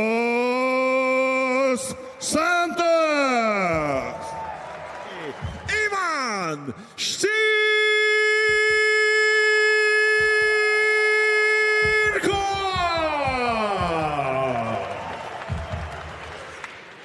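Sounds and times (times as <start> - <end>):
crowd cheering: 0.0 - 6.8, 7.5 - 17.0
ring announcer calling a name: 7.2 - 14.8.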